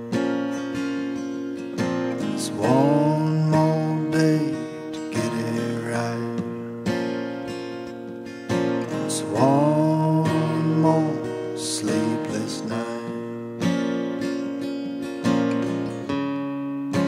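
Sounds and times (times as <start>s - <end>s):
acoustic guitar strumming chords: 0.0s - 17.0s.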